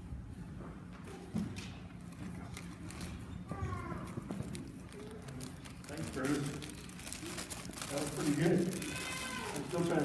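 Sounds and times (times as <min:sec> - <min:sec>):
children's footsteps: 0:00.4 - 0:10.0.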